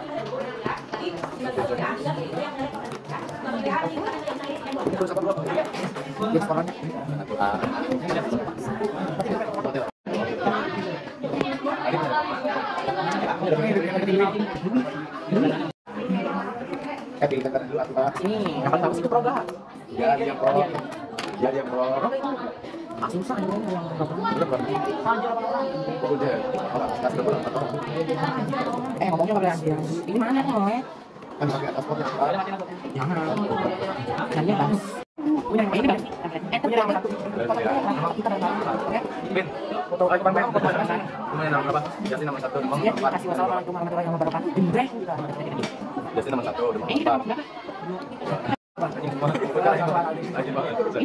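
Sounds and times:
young voices chattering: 0.0s - 51.0s.

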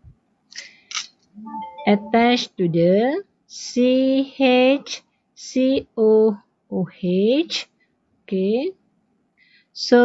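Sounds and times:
person speaking: 1.4s - 3.0s.

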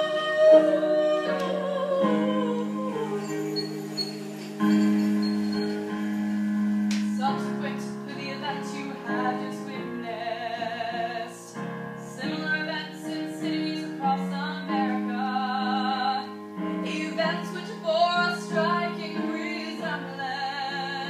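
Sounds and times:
women singing in harmony: 0.0s - 4.3s, 7.1s - 21.0s
musical accompaniment: 0.0s - 21.0s.

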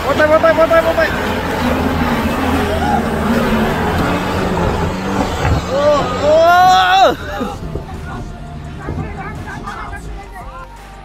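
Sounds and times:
people shouting: 0.0s - 10.6s
engine running under load: 0.0s - 11.0s
tyres churning mud: 0.0s - 11.0s.

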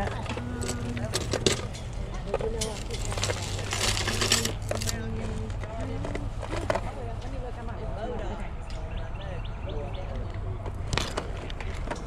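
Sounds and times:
faint voices: 0.0s - 12.0s
metal jewelry clinking: 2.6s - 5.0s.

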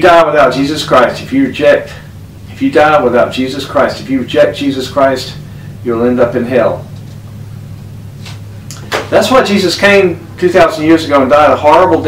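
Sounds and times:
man speaking: 0.0s - 6.9s, 9.1s - 12.0s
steady low hum: 0.0s - 12.0s.

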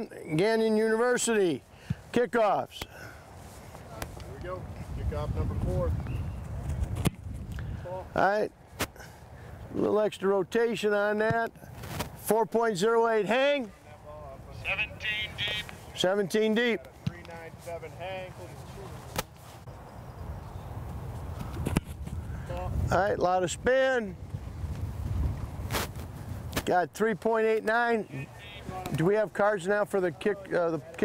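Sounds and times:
wind rumble on microphone: 4.4s - 8.1s, 19.7s - 26.6s
foot kicking football: 16.8s - 17.6s, 18.6s - 19.7s, 20.8s - 22.2s.

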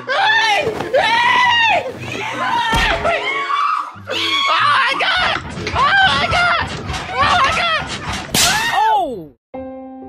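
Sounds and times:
sharp smack: 8.3s - 8.7s.

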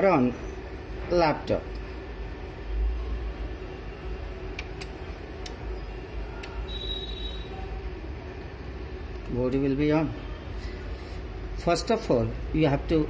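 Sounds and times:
background hum and noise: 0.0s - 13.0s
faint high whine: 5.1s - 13.0s.

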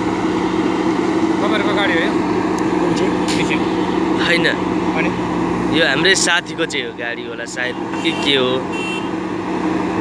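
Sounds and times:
diesel engine running steadily: 0.0s - 10.0s.

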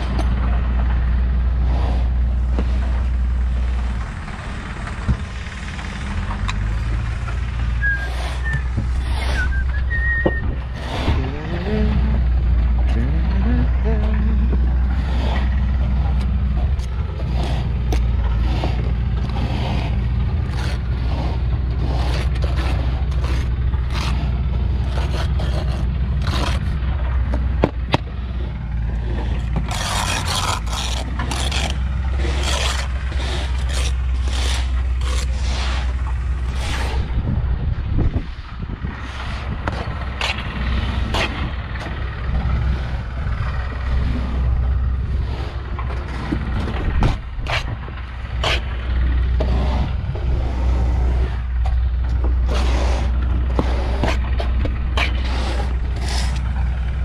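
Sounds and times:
steady low hum: 0.0s - 57.0s
trowel scraping mortar: 7.7s - 37.4s, 39.0s - 57.0s
trowel tapping bricks: 50.9s - 56.6s.

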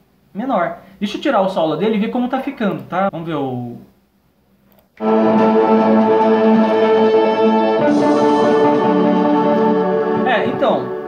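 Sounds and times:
synth and keyboard chords: 5.0s - 11.0s.

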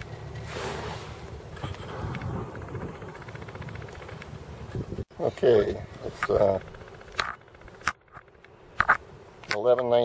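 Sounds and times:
wind buffeting microphone: 1.5s - 7.8s.

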